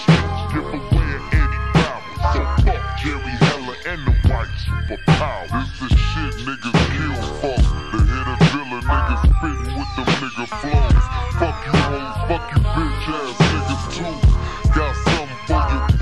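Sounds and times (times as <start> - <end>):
slow heavy kick drum beat: 0.0 - 9.7, 10.7 - 16.0
deep bass line: 0.0 - 16.0
pitched-down rap vocals: 0.0 - 16.0.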